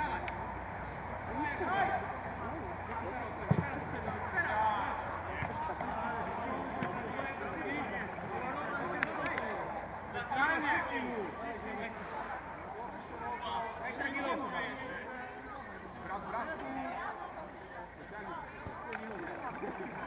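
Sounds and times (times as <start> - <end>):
players and spectators calling out: 0.0 - 20.0.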